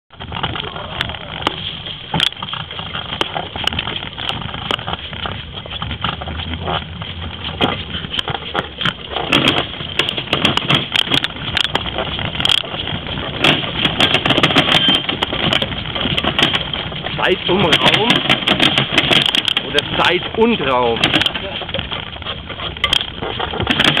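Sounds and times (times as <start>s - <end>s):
cart wheels rattling over asphalt: 0.1s - 24.0s.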